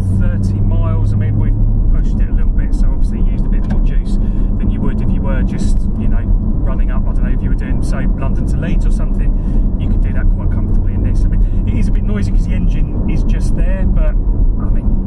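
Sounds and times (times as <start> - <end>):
car engine drone: 0.0 - 15.0
man talking: 0.0 - 15.0
road noise: 0.0 - 15.0.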